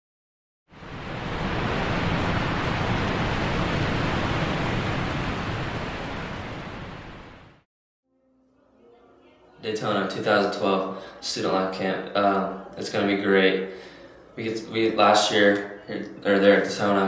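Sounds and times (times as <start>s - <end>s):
rushing ocean ambience: 0.7s - 7.6s.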